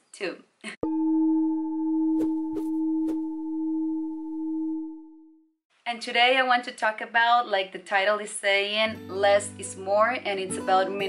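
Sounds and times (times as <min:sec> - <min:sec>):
low ringing tone: 0:00.8 - 0:05.5.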